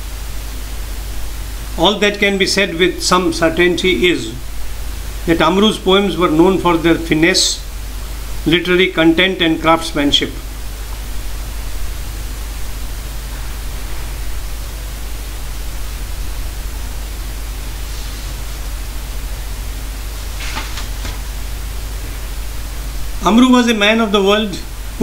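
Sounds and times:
recording hiss: 0.0s - 25.0s
low hum: 9.8s - 23.6s.

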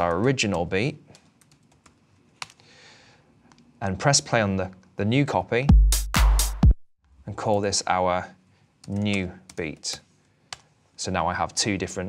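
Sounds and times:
laptop keyboard typing: 0.0s - 2.6s, 8.8s - 10.7s.

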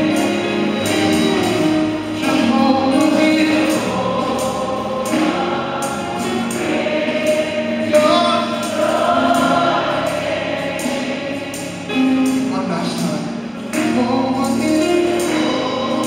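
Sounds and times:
choir singing gospel song: 0.0s - 16.0s
electric keyboard: 0.0s - 16.0s
lead singer on microphone: 0.0s - 16.0s
sharp percussion strikes: 0.0s - 16.0s.

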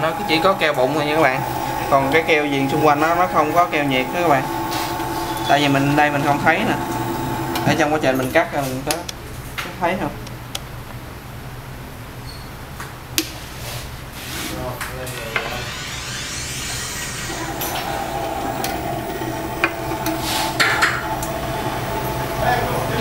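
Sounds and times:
small motor humming: 0.0s - 8.0s, 15.3s - 23.0s.

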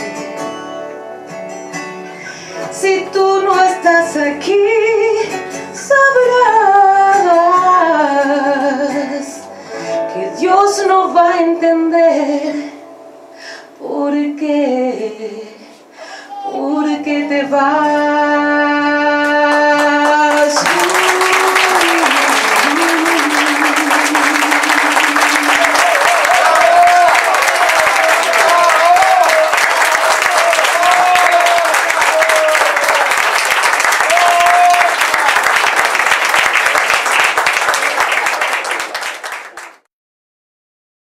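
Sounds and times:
audience applauding: 19.5s - 39.9s
audience calling out: 20.6s - 35.5s.

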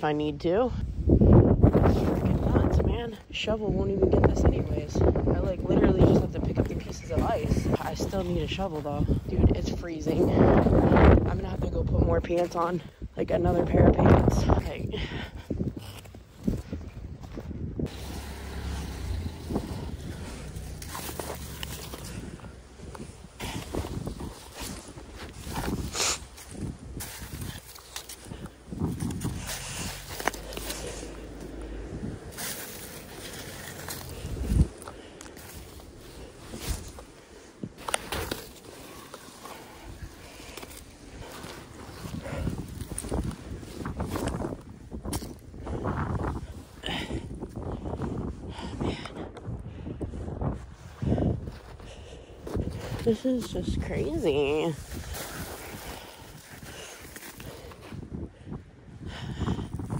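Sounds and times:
wind buffeting microphone: 0.0s - 59.9s
snow and ice crunching: 1.6s - 48.2s, 50.2s - 58.3s.

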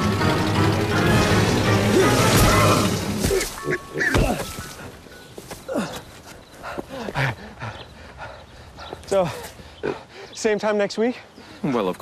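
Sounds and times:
grunts and squeals: 1.8s - 10.3s.

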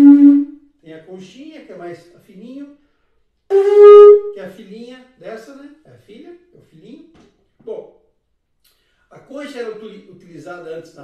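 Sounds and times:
conch shell trumpet blown: 0.0s - 0.6s, 3.5s - 4.4s.

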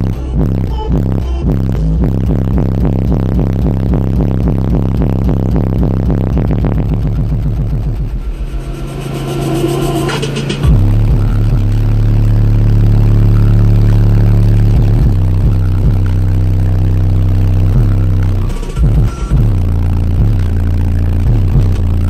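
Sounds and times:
bass-heavy music: 0.0s - 22.0s
steady low bass note: 0.0s - 22.0s.

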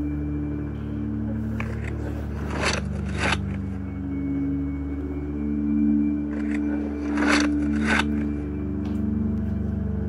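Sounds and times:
steady low hum: 0.0s - 10.0s
scratchy scraping and rustling: 1.5s - 3.8s, 6.3s - 8.4s.

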